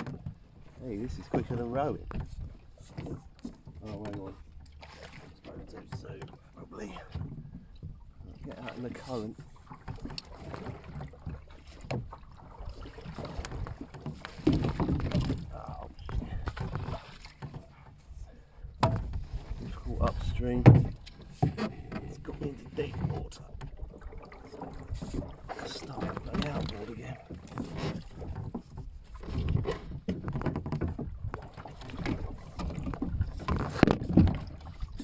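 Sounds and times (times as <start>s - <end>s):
water sloshing around pole: 0.0s - 35.0s.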